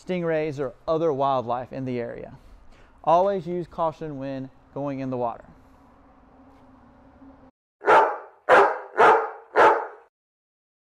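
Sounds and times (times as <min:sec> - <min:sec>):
dog barking: 0:07.8 - 0:10.1.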